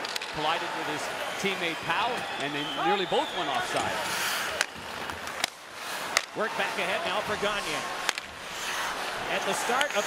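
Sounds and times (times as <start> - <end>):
puck clacks: 0.0 - 0.4, 4.5 - 6.4, 8.0 - 8.3, 9.7 - 10.0
crowd noise: 0.0 - 10.0
skates scraping ice: 2.9 - 10.0.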